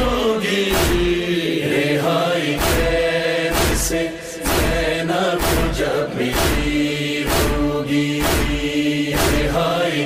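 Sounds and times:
man reciting a lament: 0.0s - 10.0s
deep beat: 0.7s - 1.3s, 2.6s - 9.6s.

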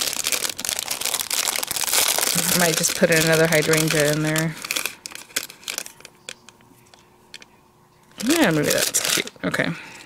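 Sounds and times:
cellophane crinkling: 0.0s - 9.6s.

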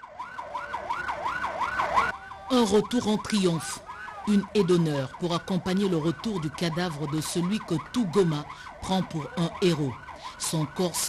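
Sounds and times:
police siren yelping: 0.0s - 11.0s.

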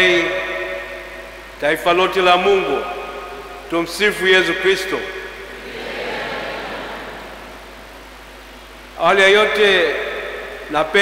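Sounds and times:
congregation responding in unison: 5.5s - 7.7s.

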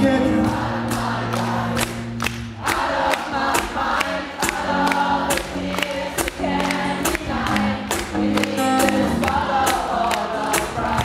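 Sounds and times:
live pop-rock band playing: 0.0s - 2.6s, 3.6s - 11.0s
many voices singing together: 0.0s - 11.0s.

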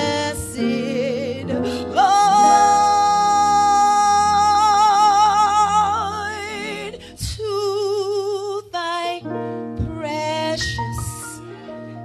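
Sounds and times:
electric keyboard chords: 0.0s - 7.4s
woman singing with vibrato: 0.0s - 9.2s.

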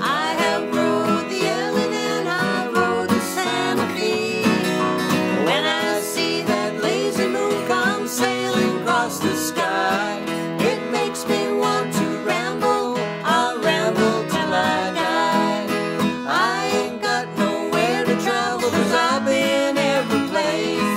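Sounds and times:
acoustic guitars strumming: 0.0s - 20.9s
woman singing: 0.0s - 20.9s.

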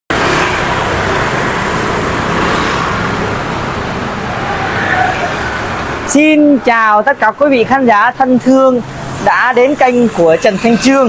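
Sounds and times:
street traffic: 0.1s - 11.0s.

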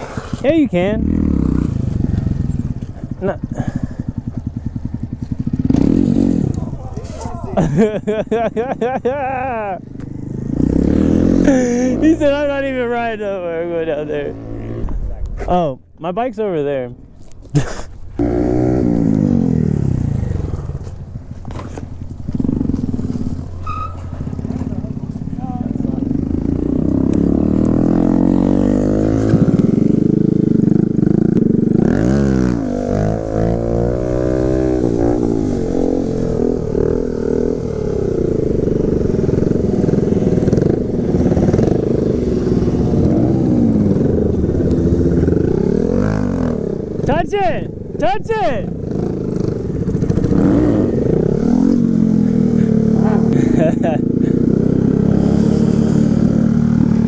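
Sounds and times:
motorcycle engine revving: 0.0s - 15.7s, 17.5s - 57.0s.

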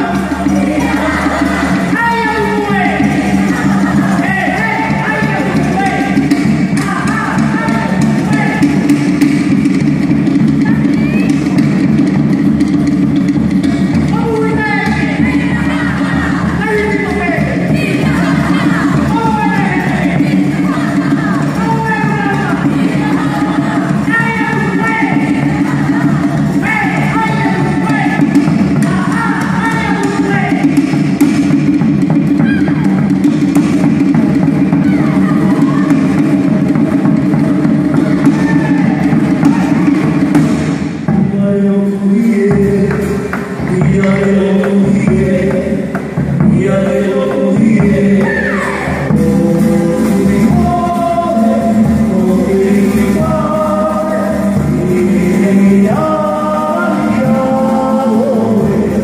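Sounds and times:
voices calling out: 0.0s - 9.0s, 14.0s - 30.9s, 32.2s - 40.4s
rapid drumming: 0.0s - 59.0s.

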